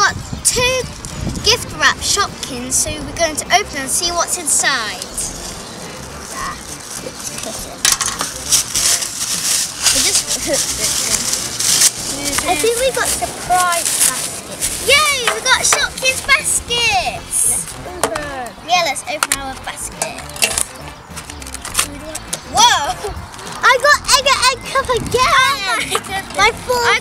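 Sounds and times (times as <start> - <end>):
wrapping paper tearing and crinkling: 6.2 - 15.1.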